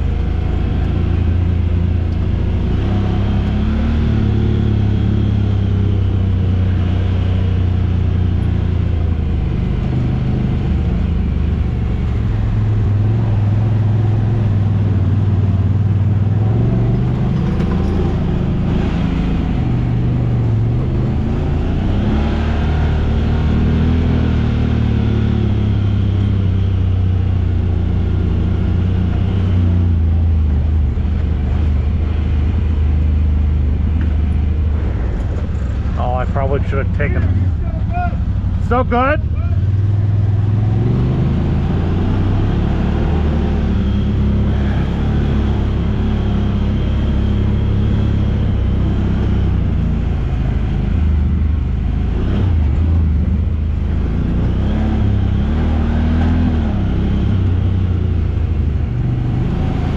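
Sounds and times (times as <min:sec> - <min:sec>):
utility vehicle engine running: 0:00.0 - 0:59.9.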